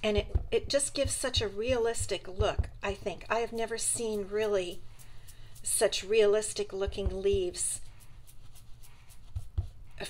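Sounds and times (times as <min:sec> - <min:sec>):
soft low thumps: 0:00.0 - 0:08.0
brush rubbing on paper: 0:00.7 - 0:10.0.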